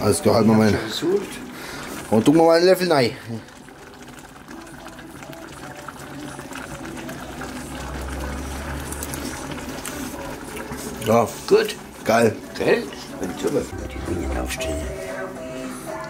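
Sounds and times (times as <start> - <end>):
sauce bubbling in a pot: 0.0 - 16.0.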